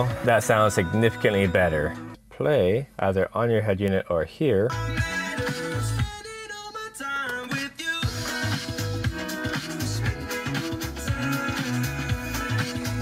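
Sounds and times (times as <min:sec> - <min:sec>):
music through car speakers: 0:00.0 - 0:02.2, 0:04.7 - 0:13.0.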